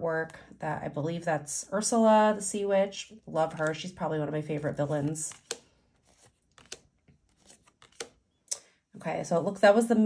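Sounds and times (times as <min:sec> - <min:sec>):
cards clicking and rustling: 0:04.8 - 0:08.2.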